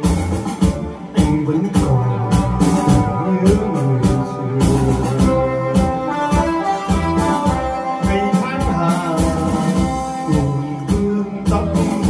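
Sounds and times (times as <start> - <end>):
slow ballad on electronic keyboard: 0.0 - 12.0.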